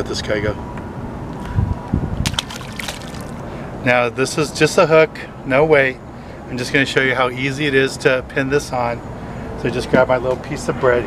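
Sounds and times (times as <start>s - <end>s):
fish splashing into water: 2.2s - 3.5s
water sloshing: 2.2s - 3.5s.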